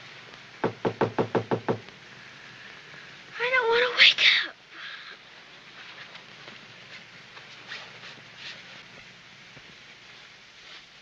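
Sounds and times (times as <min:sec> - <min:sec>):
sharp knocks: 0:00.6 - 0:01.8.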